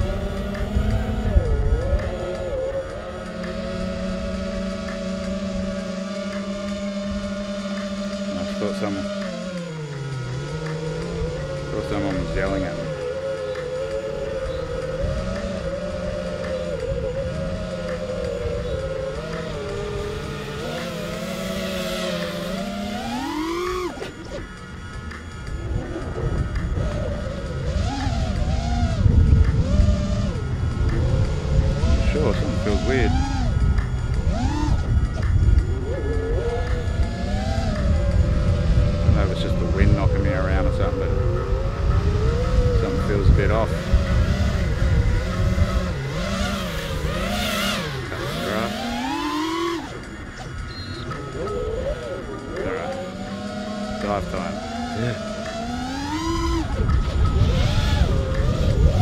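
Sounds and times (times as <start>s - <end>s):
heavy low rumble: 0.0s - 7.4s, 9.8s - 59.0s
quadcopter motors whining: 0.0s - 59.0s.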